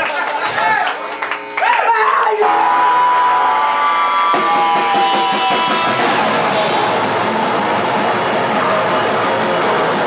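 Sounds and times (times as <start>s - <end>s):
punk band playing live: 4.2s - 10.0s.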